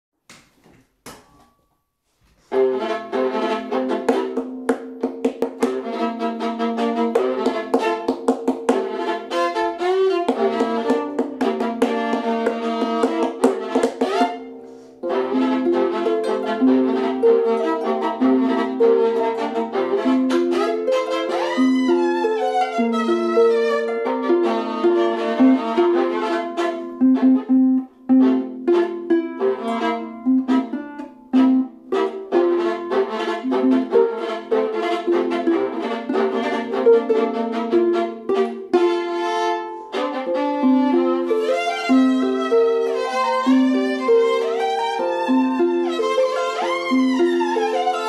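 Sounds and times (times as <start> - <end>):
viola and harp duet: 2.5 - 48.0.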